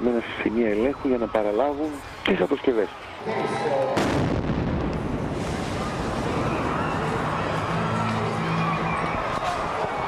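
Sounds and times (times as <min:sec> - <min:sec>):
bomb explosion blast: 0:04.0 - 0:07.4
explosion echo: 0:04.0 - 0:07.6.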